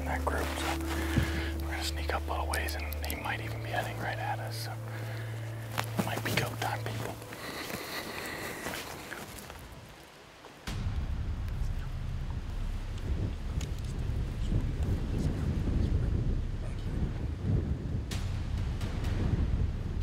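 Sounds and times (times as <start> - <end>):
faint clicks: 2.4 - 3.6
wind buffeting microphone: 10.6 - 20.0.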